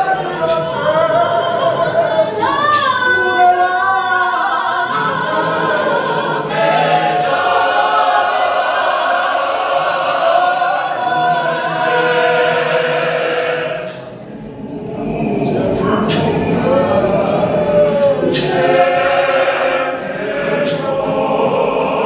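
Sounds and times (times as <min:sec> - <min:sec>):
gospel choir singing a hymn: 0:00.0 - 0:22.0.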